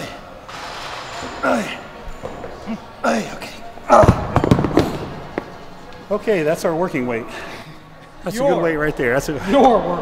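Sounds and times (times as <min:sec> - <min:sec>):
dumbbells crashing on gym floor: 0:04.0 - 0:05.3.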